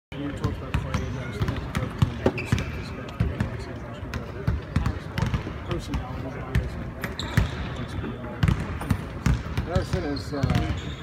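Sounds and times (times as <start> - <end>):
murmur of voices: 0.1 - 11.0
basketballs bouncing: 0.3 - 11.0.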